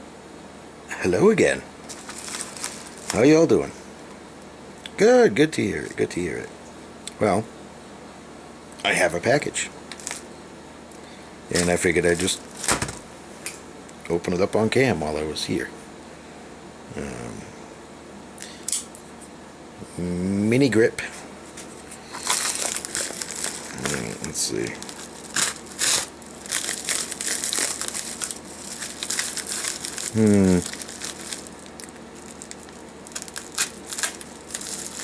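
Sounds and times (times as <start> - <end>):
plastic crinkling: 1.8 - 3.4, 9.9 - 10.2, 11.5 - 13.0, 21.9 - 35.0
plastic film crackling: 1.8 - 3.4, 9.9 - 10.2, 11.5 - 13.0, 22.0 - 35.0.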